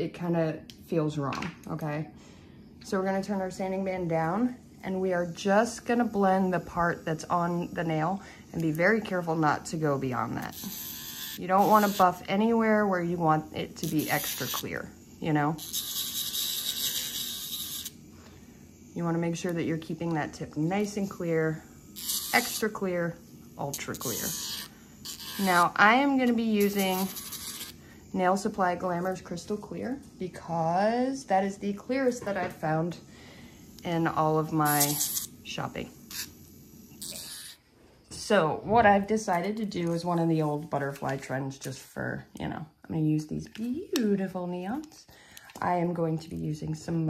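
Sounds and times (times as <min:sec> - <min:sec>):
electric nail drill whine: 0:02.8 - 0:29.8, 0:30.5 - 0:37.6.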